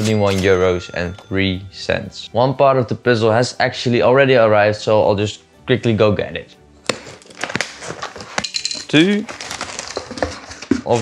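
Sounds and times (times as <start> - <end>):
cardboard and packing rustling: 6.9 - 11.0.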